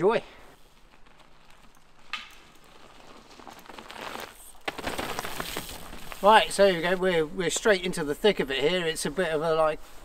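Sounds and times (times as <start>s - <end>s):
bike tyres rolling over rocky trail: 0.0s - 9.5s.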